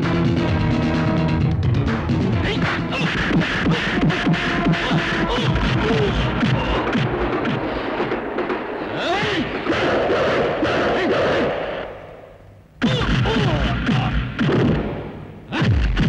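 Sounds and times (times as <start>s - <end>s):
action music: 0.0s - 12.2s
man shouting: 2.4s - 6.9s, 12.8s - 14.2s.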